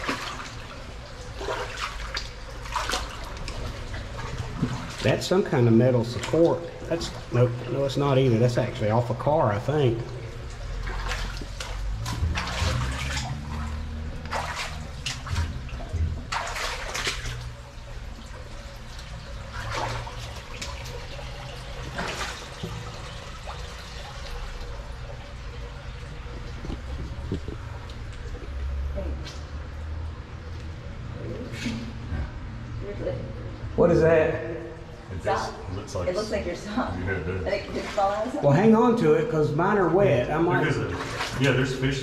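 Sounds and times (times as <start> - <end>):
footsteps splashing through water: 0.0 - 7.7, 10.1 - 23.0, 25.8 - 30.8, 40.8 - 42.0
trickle of running water: 0.0 - 32.8, 37.2 - 42.0.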